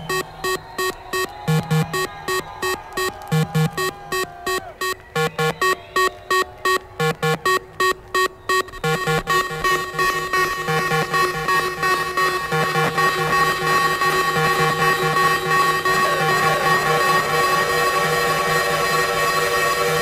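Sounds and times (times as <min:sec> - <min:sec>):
techno synth stabs over a beat: 0:00.0 - 0:20.0
wavering held synth line: 0:00.0 - 0:20.0.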